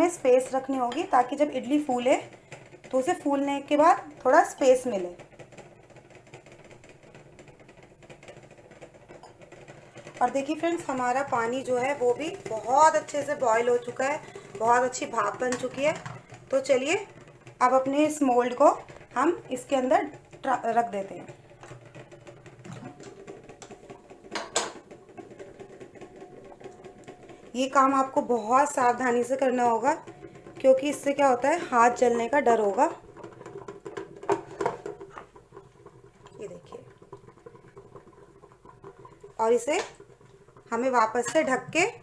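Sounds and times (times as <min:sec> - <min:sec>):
plastic clatter: 0:00.9 - 0:42.0.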